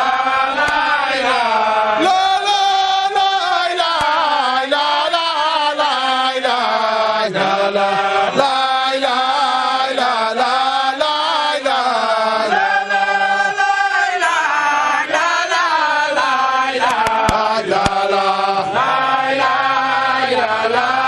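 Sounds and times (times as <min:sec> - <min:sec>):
melodic devotional chanting: 0:00.0 - 0:21.0.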